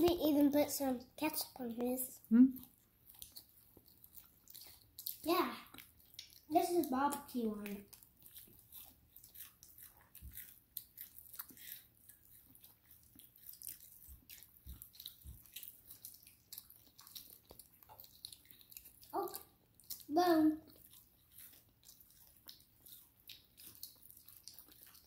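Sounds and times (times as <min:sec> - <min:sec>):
children chewing food: 0:00.0 - 0:25.0.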